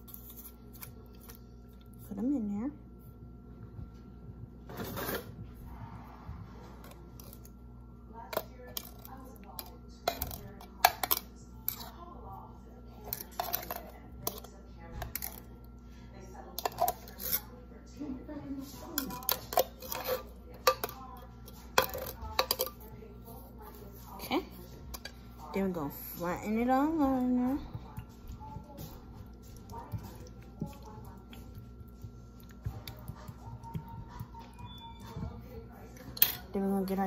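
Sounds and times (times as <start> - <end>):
kitchen utensils and dishes clinking: 8.2 - 12.0, 13.0 - 15.5, 16.5 - 17.6, 18.6 - 22.9, 24.1 - 28.2, 32.6 - 37.0.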